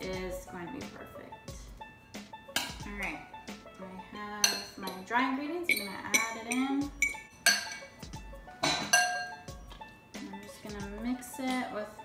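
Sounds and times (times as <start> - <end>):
glass bowl and fork clinking: 4.4 - 5.0, 5.7 - 7.9, 8.6 - 9.5.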